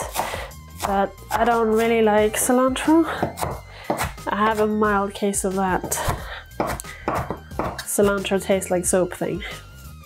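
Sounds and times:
knife chopping on wooden board: 0.0s - 1.0s, 3.2s - 4.7s, 5.8s - 7.9s.

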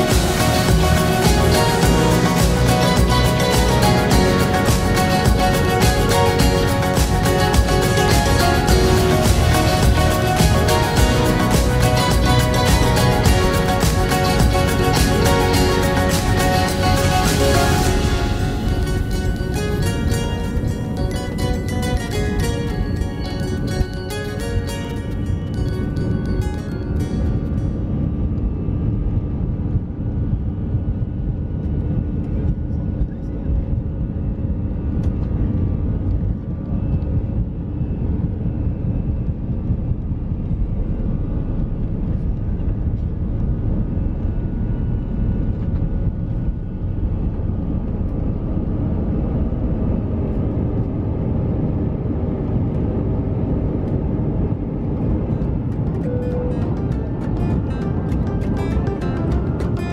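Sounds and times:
jet engines rumbling in cabin: 0.0s - 59.9s
wheels rumbling on runway: 0.0s - 59.9s.

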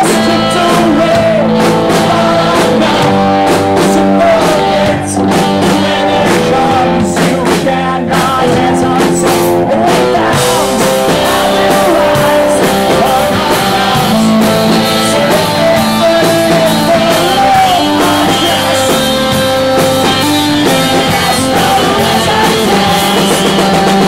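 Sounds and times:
drums: 0.0s - 24.0s
electric guitar: 0.0s - 24.0s
lead vocal singing: 0.0s - 24.0s.

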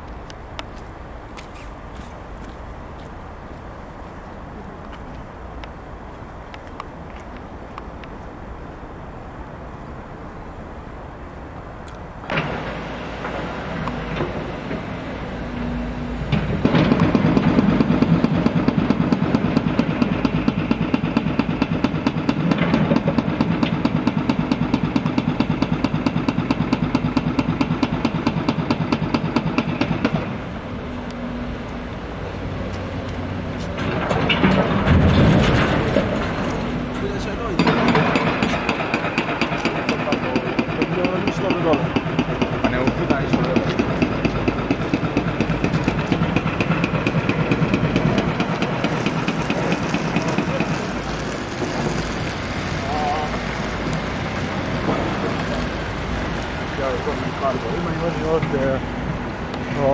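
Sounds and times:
diesel engine pulsing: 12.1s - 59.9s
loud burst of noise: 12.2s - 31.5s, 33.4s - 59.9s.

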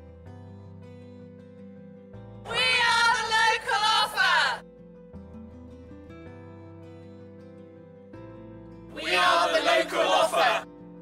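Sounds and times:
soft background music: 0.0s - 11.0s
women shouting high-pitched: 2.5s - 4.6s.

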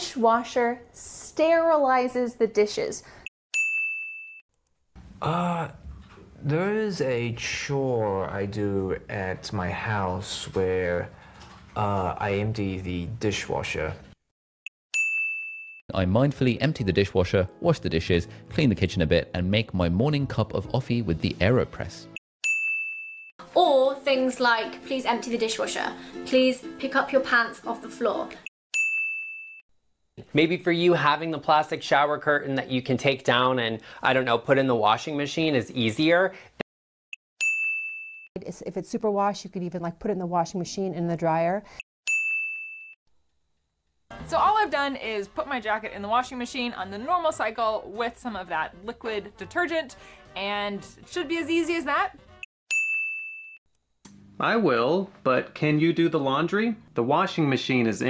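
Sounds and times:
bright bell ding: 3.6s - 4.4s, 15.0s - 15.8s, 28.8s - 29.6s, 37.4s - 38.3s, 42.1s - 43.0s, 52.7s - 53.6s.

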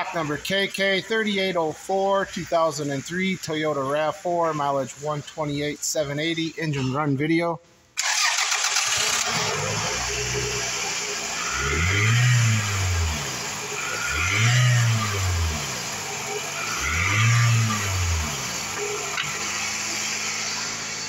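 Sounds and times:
car engine starting and revving: 8.0s - 21.0s.

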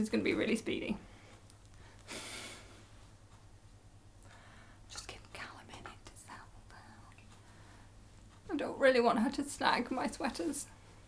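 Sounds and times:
low steady hum: 0.0s - 11.0s
breathy hiss: 1.1s - 3.0s.

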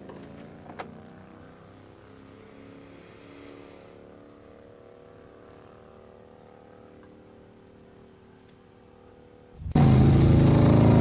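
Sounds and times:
low tone drone: 8.7s - 11.0s.

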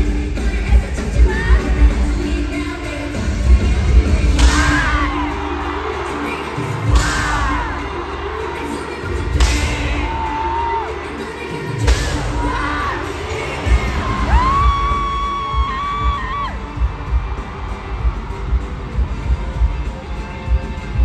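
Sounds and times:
crowd cheering: 0.0s - 21.0s
live pop song over sound system: 0.0s - 21.0s.

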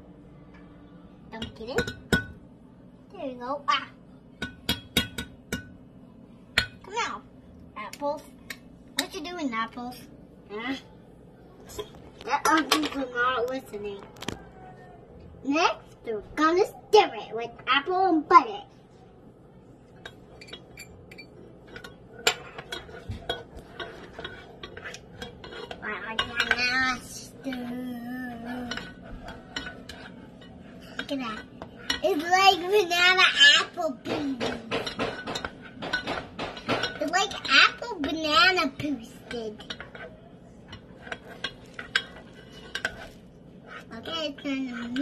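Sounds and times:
spatula scraping in pot: 19.9s - 45.0s.

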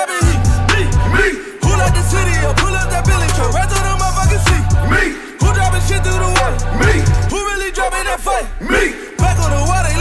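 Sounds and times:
rapping voice: 0.0s - 10.0s
deep sliding bass notes: 0.4s - 10.0s.

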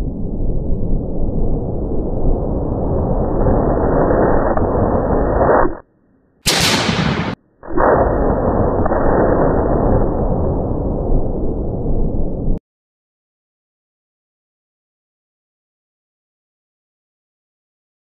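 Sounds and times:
deep explosion rumble: 0.0s - 5.5s, 6.5s - 12.6s.

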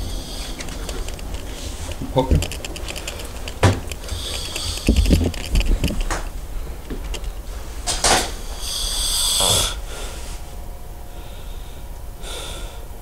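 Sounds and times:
loud hissing breaths: 0.0s - 0.9s, 4.0s - 5.1s, 8.3s - 13.0s
soft bumps and rustling: 0.6s - 8.4s
man snoring: 8.4s - 10.2s.

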